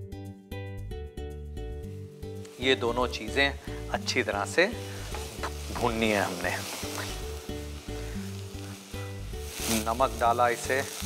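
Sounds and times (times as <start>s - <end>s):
background music: 0.0s - 11.0s
onions sizzling in a pot: 1.8s - 11.0s.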